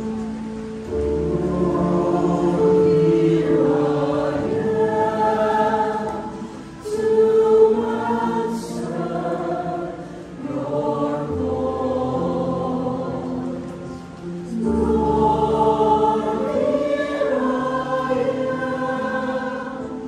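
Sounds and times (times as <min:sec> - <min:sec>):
mixed choir singing a hymn: 0:00.8 - 0:20.0.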